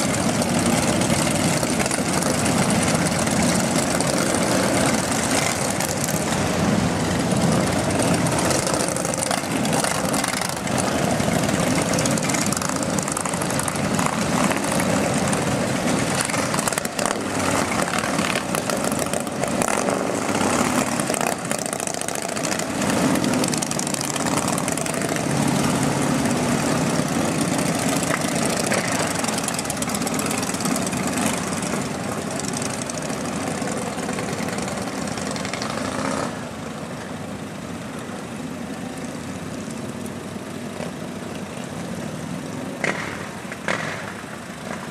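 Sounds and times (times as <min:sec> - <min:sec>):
motorcycle engines pulling away: 0:00.0 - 0:44.9.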